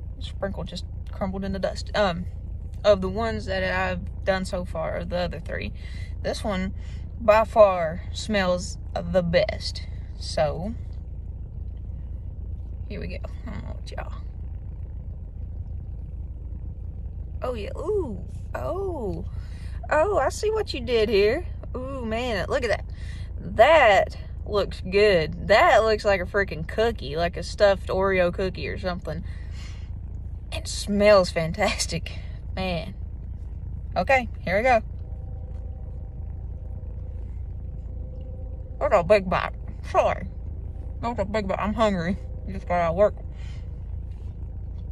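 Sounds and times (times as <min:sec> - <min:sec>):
faint steady hum: 0:00.0 - 0:44.9
low rumble inside car: 0:00.0 - 0:44.9.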